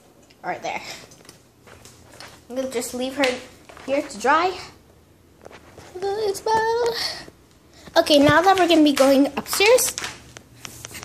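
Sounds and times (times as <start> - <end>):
girl singing wordless notes: 5.8 - 10.0.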